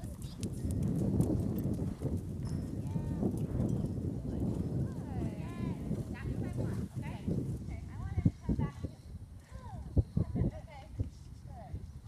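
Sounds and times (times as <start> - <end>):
horse hoofbeats on sand: 0.0 - 8.2.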